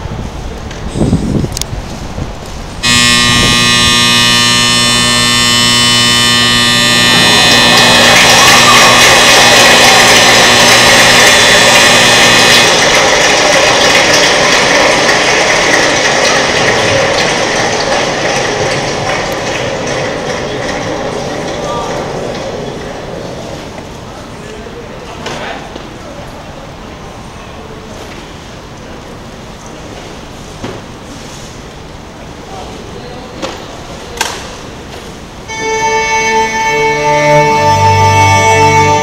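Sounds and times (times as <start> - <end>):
loud sustained musical chord: 2.8 - 13.0, 35.5 - 39.0.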